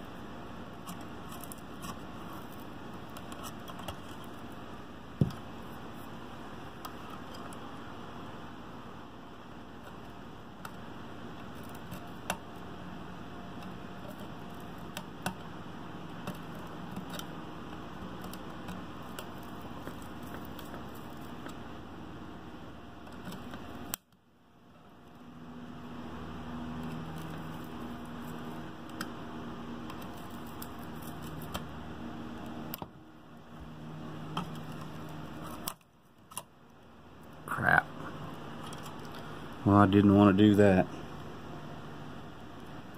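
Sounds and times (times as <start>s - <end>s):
steady background noise: 0.0s - 42.9s
small clicks and scraping of tools: 0.8s - 4.5s.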